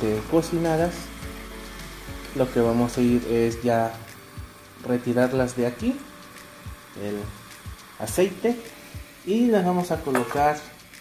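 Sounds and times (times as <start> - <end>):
frying oil sizzling: 0.0 - 11.0.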